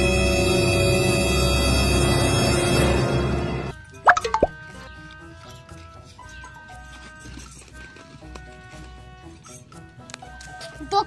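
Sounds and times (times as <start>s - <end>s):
rising cartoon bloops: 4.1s - 4.6s.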